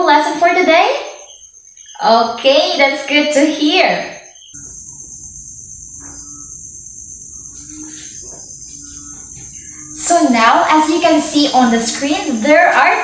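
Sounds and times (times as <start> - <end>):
cricket trilling: 0.0 - 13.0.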